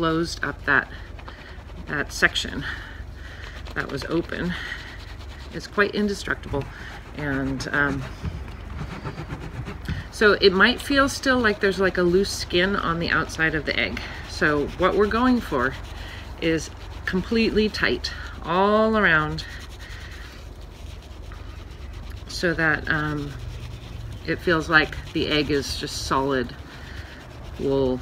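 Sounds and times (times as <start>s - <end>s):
wet scrubbing on a ridged mat: 0.0s - 28.0s.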